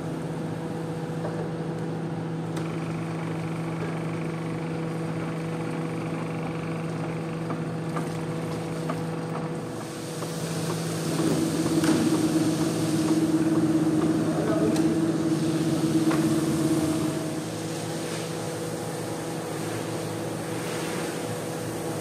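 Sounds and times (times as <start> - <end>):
industrial machine humming: 0.0 - 22.0
rushing hiss of carpet: 19.5 - 22.0.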